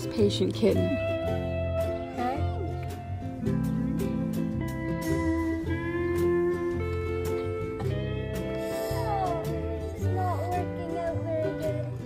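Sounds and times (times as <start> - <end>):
slide guitar music: 0.0 - 12.0.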